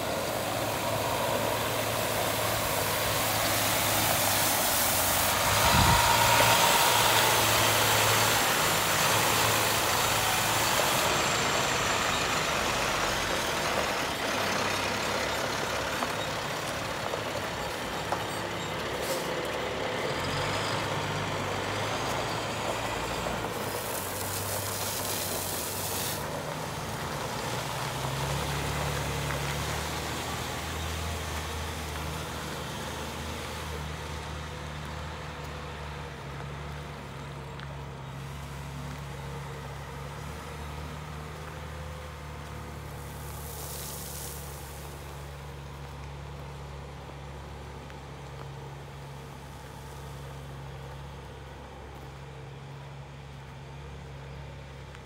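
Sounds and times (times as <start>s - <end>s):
water jetting onto ground: 0.0s - 35.6s, 38.2s - 50.4s
diesel truck engine running: 0.0s - 55.0s.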